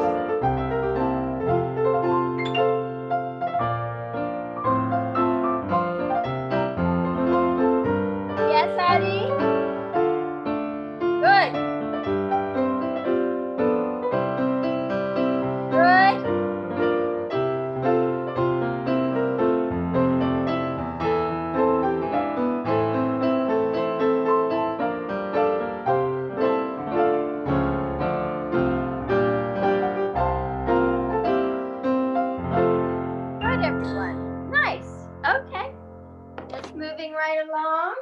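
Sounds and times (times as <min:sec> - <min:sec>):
piano playing chords and melody: 0:00.0 - 0:37.1.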